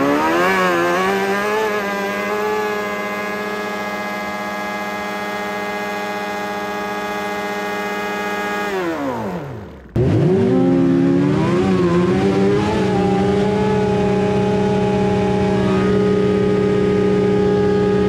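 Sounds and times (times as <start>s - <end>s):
engine revving during burnout: 0.0s - 18.0s.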